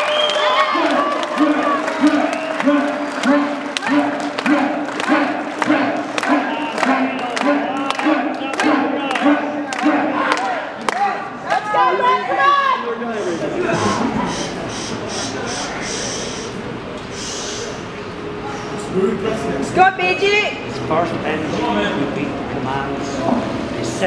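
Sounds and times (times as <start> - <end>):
crowd clapping in rhythm: 0.0 - 11.6
voices shouting in time: 0.0 - 17.9.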